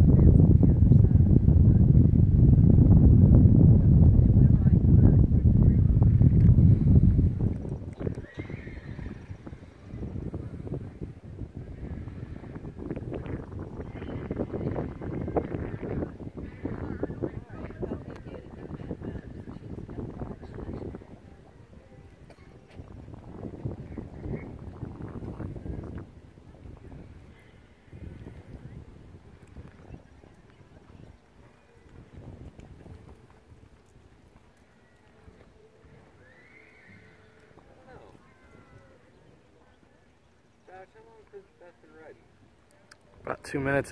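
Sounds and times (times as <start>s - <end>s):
horse whinnying: 8.0s - 9.7s, 36.2s - 39.1s.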